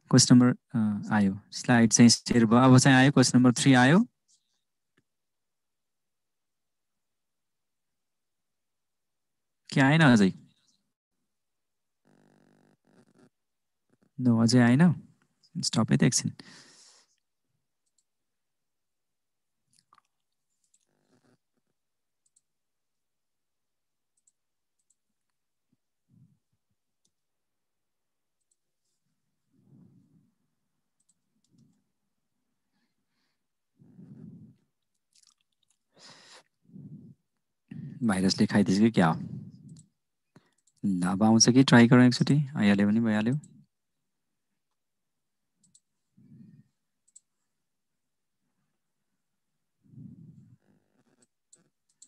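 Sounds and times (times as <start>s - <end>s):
faint clicks: 45.6s - 45.9s, 47.0s - 47.3s.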